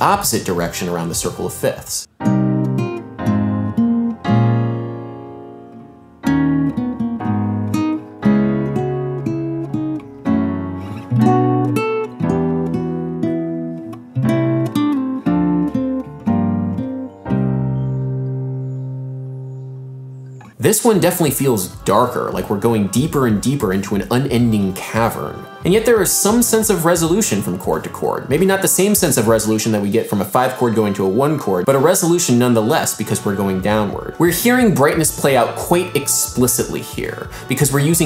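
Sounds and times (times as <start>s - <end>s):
piano chords: 0.0s - 29.6s
acoustic guitar chords: 0.0s - 38.0s.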